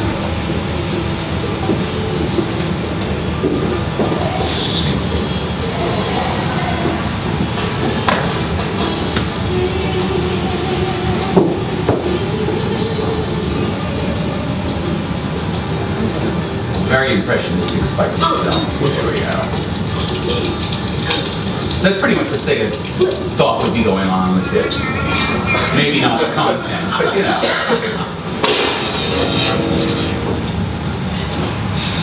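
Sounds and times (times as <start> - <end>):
film music through speakers: 0.0 - 32.0.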